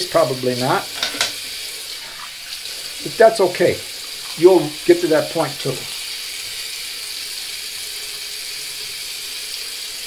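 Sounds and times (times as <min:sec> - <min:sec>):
tap water running into sink: 0:00.0 - 0:10.0.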